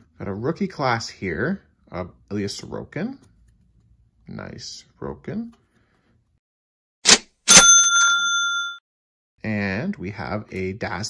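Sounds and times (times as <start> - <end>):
bright bell ding: 7.5 - 8.8.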